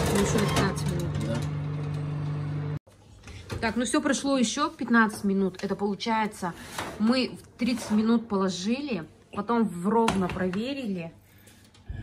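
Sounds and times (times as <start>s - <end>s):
oven fan motor humming: 0.0s - 2.8s.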